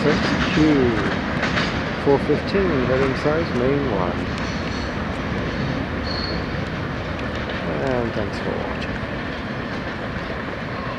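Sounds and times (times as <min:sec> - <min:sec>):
train wheels rumbling on track: 0:00.0 - 0:10.9
high wheel squeal: 0:05.6 - 0:06.6, 0:09.4 - 0:10.9.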